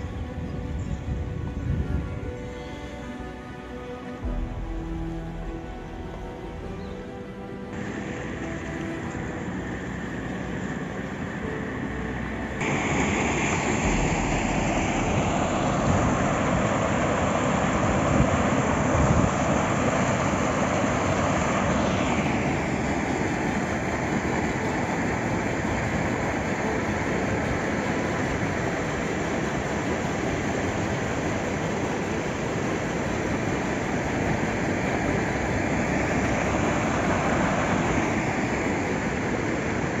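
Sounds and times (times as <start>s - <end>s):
floodwater rushing along street: 0.0s - 40.0s.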